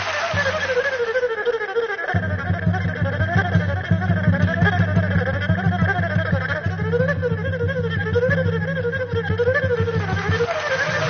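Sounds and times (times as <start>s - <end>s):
erhu gliding melody: 0.0s - 11.0s.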